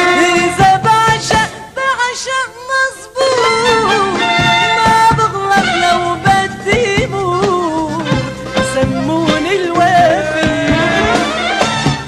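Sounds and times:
band accompaniment: 0.0s - 1.8s, 3.2s - 12.0s
woman singing with vibrato: 0.0s - 11.3s.

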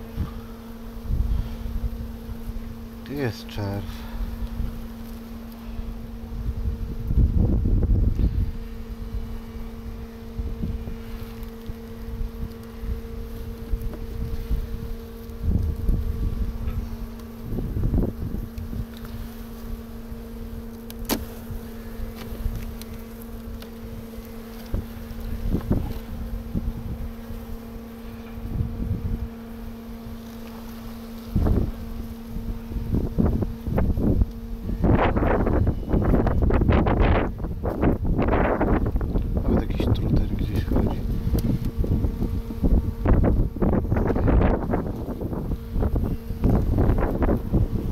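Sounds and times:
honeybees humming: 0.0s - 47.9s
wind rumbling on microphone: 0.0s - 47.9s.

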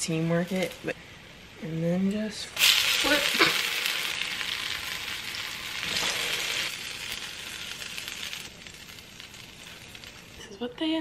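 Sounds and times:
pancakes sizzling in hot oil: 2.5s - 11.0s.

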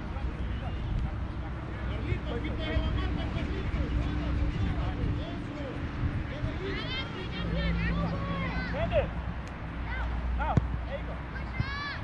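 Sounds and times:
children shouting: 11.4s - 12.0s.

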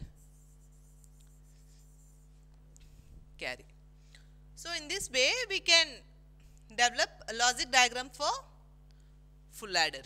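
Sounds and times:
stylus scratching and tapping screen: 0.0s - 3.0s
low electrical hum: 0.0s - 10.0s.

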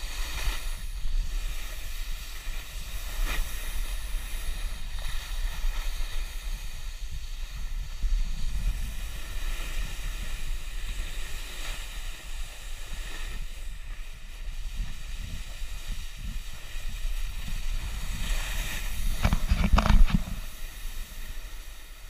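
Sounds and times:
hiss of riding on snow: 0.0s - 22.0s
wind buffeting microphone: 0.0s - 22.0s.

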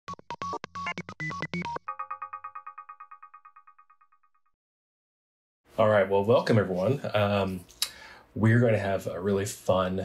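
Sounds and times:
repeating synth chord jingle: 0.3s - 4.4s.

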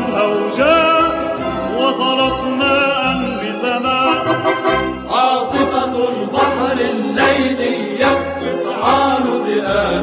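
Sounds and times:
moving bass line: 0.0s - 9.2s
choir singing: 0.0s - 10.0s
orchestral accompaniment: 0.0s - 10.0s.

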